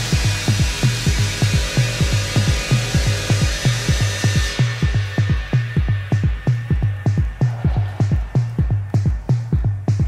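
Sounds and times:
pulsing bass line: 0.0s - 10.0s
techno kick drum: 0.0s - 10.0s.

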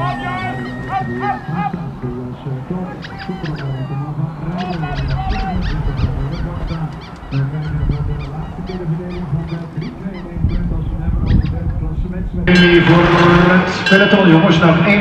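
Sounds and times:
short high honk-like calls: 0.0s - 2.0s.

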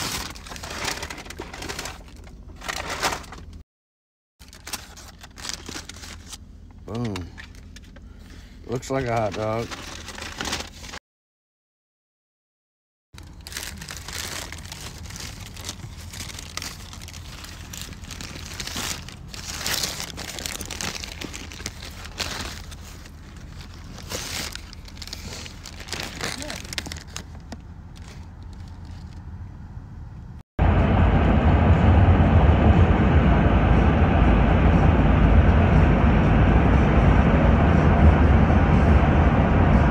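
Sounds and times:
paper wrapper crinkling: 0.0s - 3.6s, 4.4s - 8.0s, 8.8s - 11.0s, 13.2s - 29.2s
road noise inside moving car: 13.2s - 39.9s.

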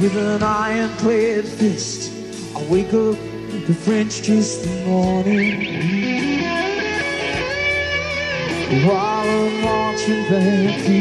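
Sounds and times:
person singing: 0.0s - 7.4s, 8.5s - 11.0s
electric guitar: 0.0s - 11.0s
rock band playing a ballad: 0.0s - 11.0s.

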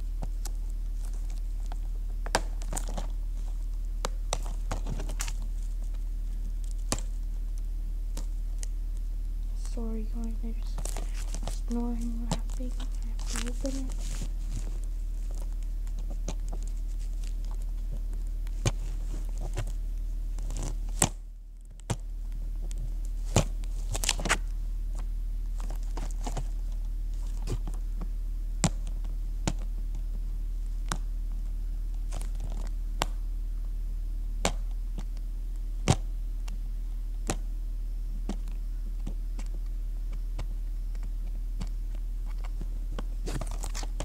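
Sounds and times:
hands rustling and knocking objects: 0.0s - 30.1s, 38.2s - 44.0s
low electrical hum: 0.0s - 44.0s.

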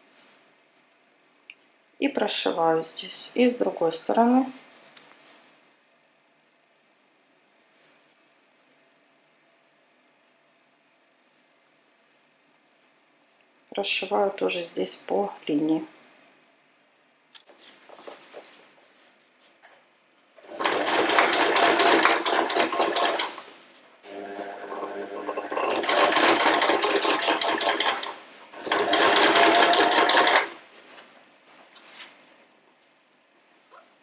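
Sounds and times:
electric sewing machine stitching: 20.4s - 30.6s.

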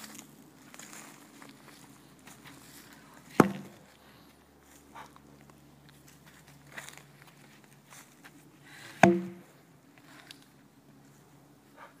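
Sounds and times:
wooden log thudding on dirt: 3.3s - 3.8s, 9.0s - 9.5s.

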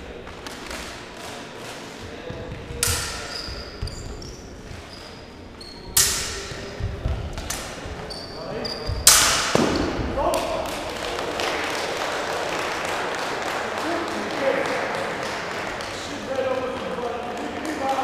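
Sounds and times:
shoes squeaking on floor: 1.4s - 9.2s
thudding footwork on floor: 2.0s - 4.9s
sabres clashing: 2.8s - 5.0s, 5.9s - 8.0s, 8.8s - 10.0s.

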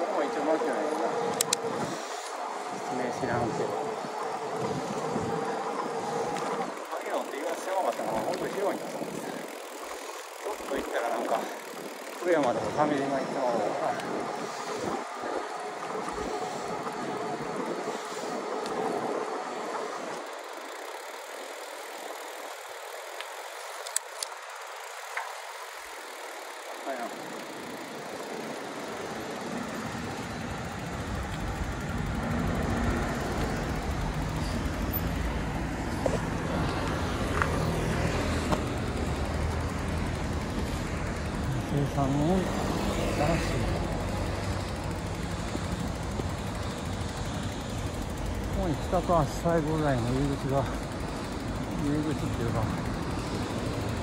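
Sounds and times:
wind over microphone: 0.0s - 20.3s
bicycle tyres on road: 0.0s - 54.0s
low rumble of road traffic: 0.0s - 54.0s.

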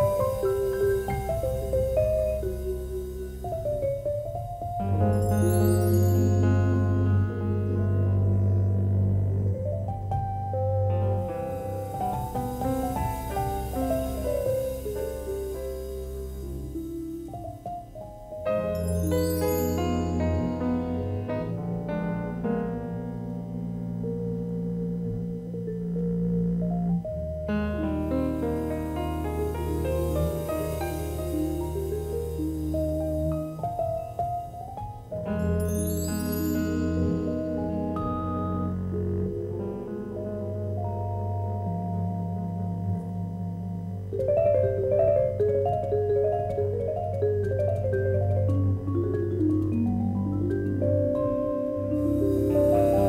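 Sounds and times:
jazz vibraphone with soft mallets: 0.0s - 53.0s
low bass: 0.0s - 53.0s
piano: 0.0s - 53.0s.

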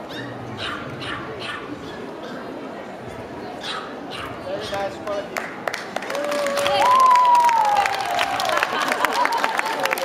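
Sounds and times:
dog yipping and barking: 0.0s - 2.5s, 3.6s - 4.4s
crowd chatter in a hall: 0.0s - 10.0s.

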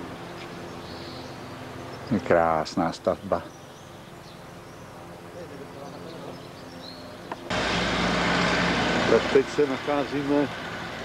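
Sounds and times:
faint bird chirps: 0.2s - 2.3s
loud rushing noise with hum: 7.5s - 11.0s.

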